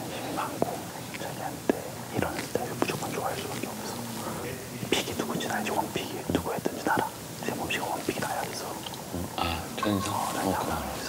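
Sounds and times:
men talking in hushed voices: 0:00.0 - 0:11.0.

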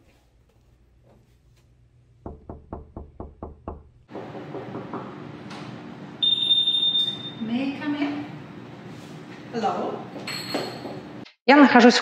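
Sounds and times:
room noise: 0:00.0 - 0:11.3
knocking on door: 0:02.2 - 0:05.2
loud high-pitched beep: 0:06.2 - 0:07.4.

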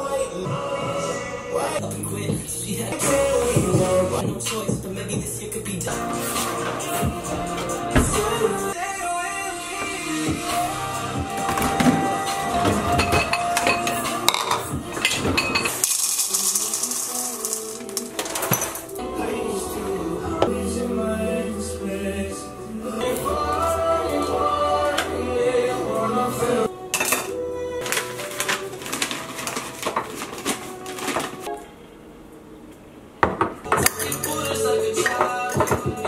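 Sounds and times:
cereal poured into a bowl: 0:15.7 - 0:18.2.

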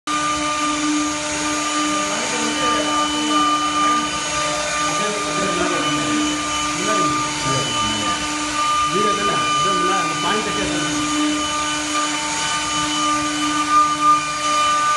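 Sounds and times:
router spindle motor whine: 0:00.1 - 0:14.9
motor hiss: 0:00.3 - 0:14.8.

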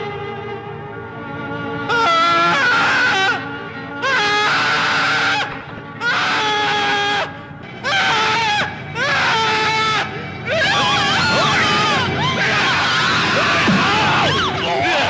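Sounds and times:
film music: 0:00.0 - 0:15.0
man wailing: 0:01.9 - 0:07.3, 0:07.9 - 0:15.0.

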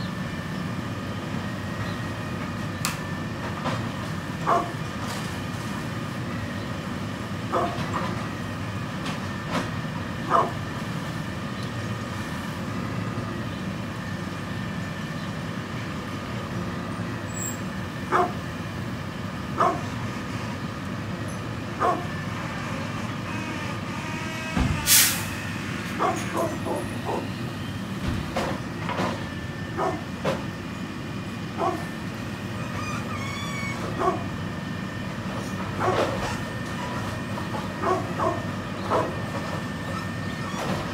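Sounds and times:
dog barking: 0:04.4 - 0:04.8, 0:07.5 - 0:07.8, 0:10.3 - 0:10.6, 0:18.1 - 0:18.4, 0:19.6 - 0:19.9, 0:21.8 - 0:22.1, 0:26.0 - 0:27.3, 0:29.8 - 0:30.1, 0:31.6 - 0:31.9, 0:34.0 - 0:34.3, 0:35.8 - 0:36.1, 0:37.8 - 0:39.2
loud hiss: 0:24.8 - 0:25.4.

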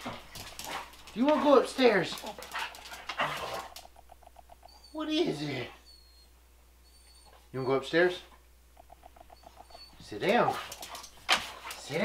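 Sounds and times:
dog whining: 0:03.2 - 0:10.5.

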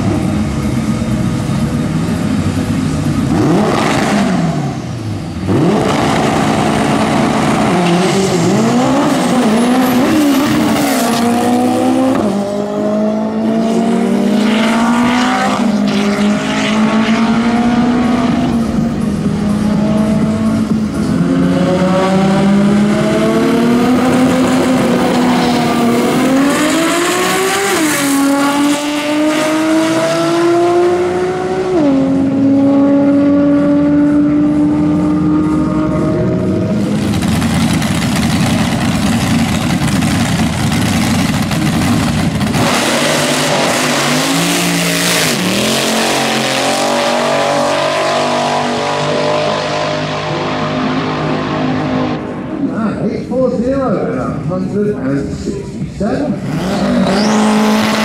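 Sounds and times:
drag racing car engine full throttle: 0:00.0 - 0:58.0
engine revving: 0:02.1 - 0:53.0, 0:56.2 - 0:58.0.

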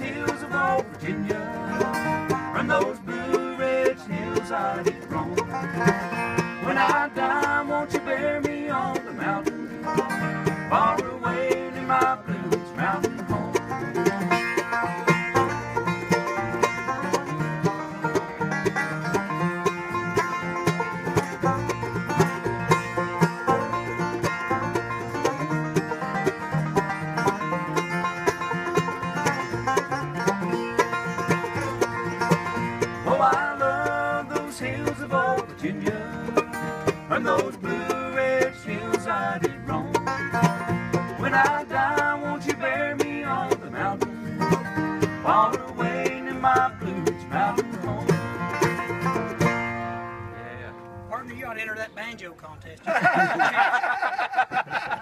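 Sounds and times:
banjo picking fast runs: 0:00.0 - 0:50.3
strummed acoustic guitar: 0:00.0 - 0:51.7.

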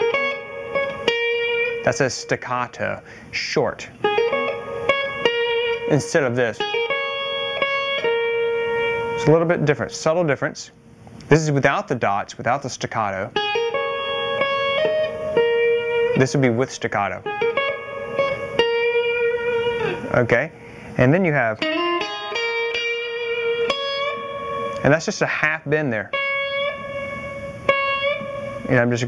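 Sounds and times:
blues guitar phrase: 0:00.0 - 0:29.0.

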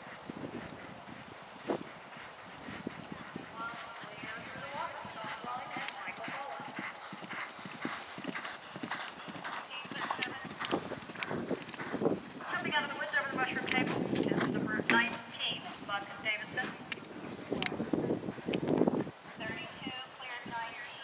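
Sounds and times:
horse galloping on grass: 0:00.0 - 0:21.0
people talking: 0:03.6 - 0:06.8, 0:09.7 - 0:10.7, 0:12.4 - 0:16.8, 0:19.4 - 0:21.0.

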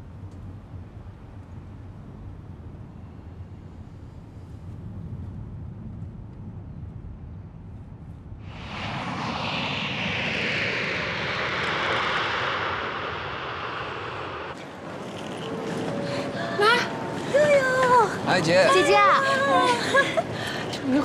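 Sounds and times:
jet airliner engine noise: 0:00.0 - 0:21.0.

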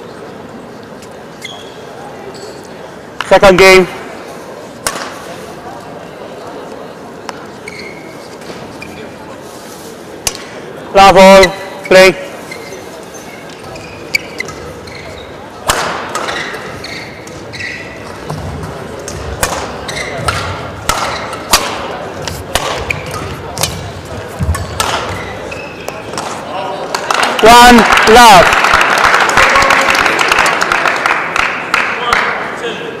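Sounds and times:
rackets striking shuttlecock: 0:04.8 - 0:05.2, 0:15.6 - 0:17.4, 0:18.1 - 0:27.2.

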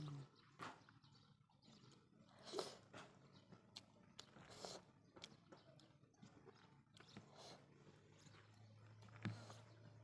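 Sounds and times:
chewing smacks: 0:02.4 - 0:09.8.

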